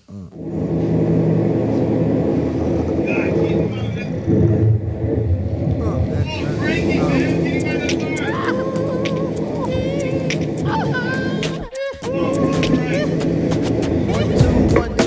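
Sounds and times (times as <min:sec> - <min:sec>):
engine rumble: 0:00.0 - 0:15.0
indistinct voices: 0:00.0 - 0:15.0.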